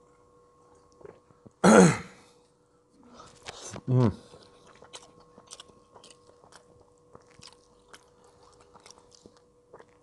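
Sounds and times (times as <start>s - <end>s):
faint steady hum: 0.0s - 10.0s
man chewing with mouth clicks: 0.6s - 1.6s, 3.1s - 10.0s.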